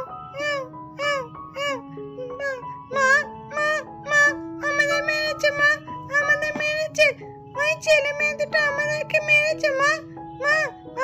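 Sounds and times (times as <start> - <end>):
background music with held notes: 0.0 - 11.0
high-pitched childlike voice: 0.0 - 11.0.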